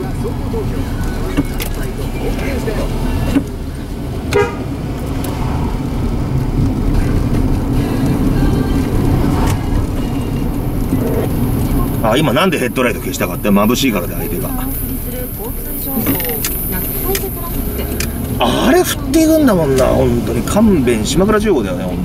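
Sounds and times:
car engine and road noise: 0.0s - 22.0s.

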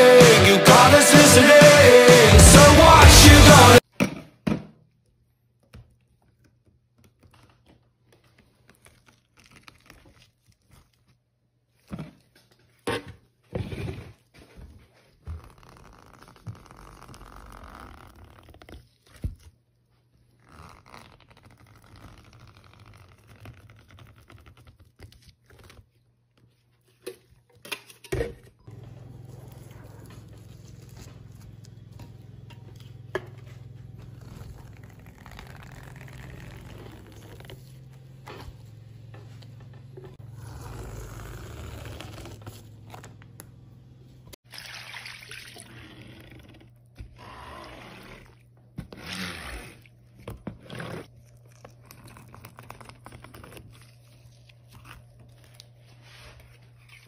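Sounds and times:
metal scraper scraping wax: 47.3s - 51.1s.

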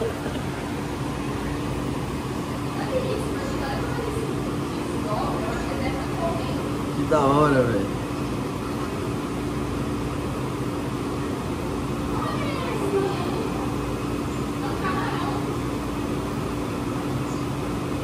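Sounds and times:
faint voices: 0.0s - 8.1s, 12.0s - 16.0s
steady machine hum: 0.0s - 18.0s.

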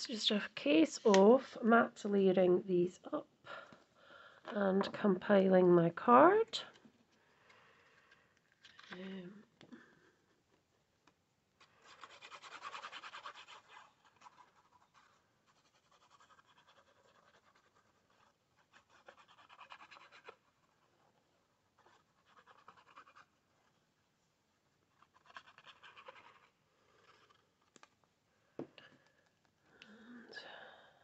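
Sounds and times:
glue nozzle scratching on cardstock: 11.6s - 21.0s, 21.8s - 23.4s.

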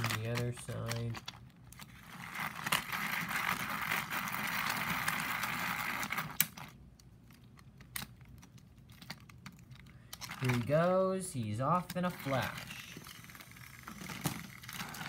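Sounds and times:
toy engine whirring: 0.0s - 6.8s, 12.0s - 15.0s.

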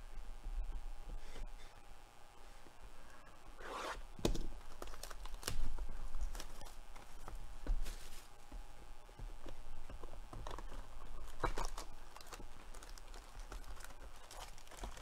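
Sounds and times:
plastic shrink wrap tearing: 4.4s - 7.1s, 10.5s - 15.0s.

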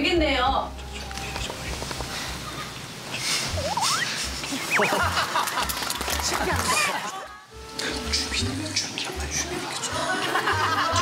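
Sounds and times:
warbling whistle sound effect: 3.5s - 5.0s.

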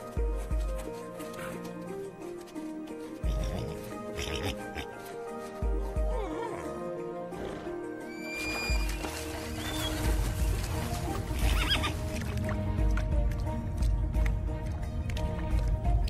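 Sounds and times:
film score music: 0.0s - 16.0s
horses whinnying: 3.2s - 5.0s, 6.1s - 10.0s, 11.4s - 12.0s.

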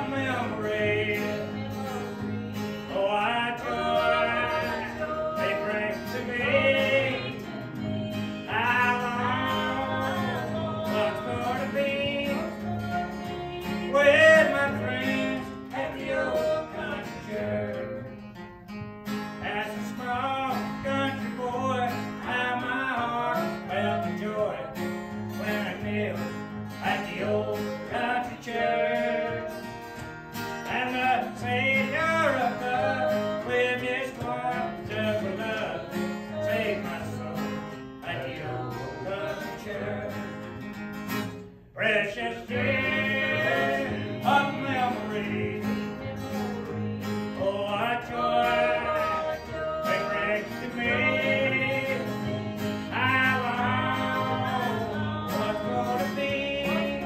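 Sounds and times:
man singing: 0.0s - 18.2s, 19.4s - 29.7s, 30.6s - 40.5s, 41.7s - 57.0s
strummed acoustic guitar: 0.0s - 57.0s.

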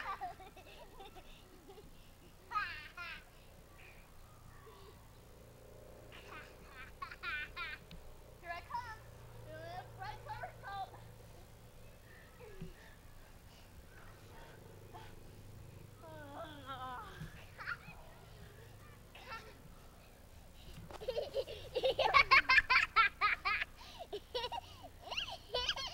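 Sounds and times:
steady low hum: 0.0s - 25.9s.

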